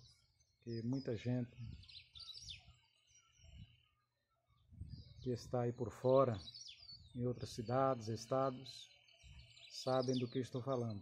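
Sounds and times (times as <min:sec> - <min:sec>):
songbird chirps: 0:00.0 - 0:11.0.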